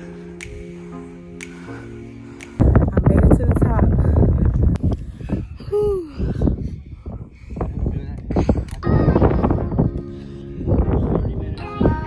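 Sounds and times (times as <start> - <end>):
background music: 0.0 - 2.7, 8.8 - 12.0
woman's voice: 2.9 - 4.2.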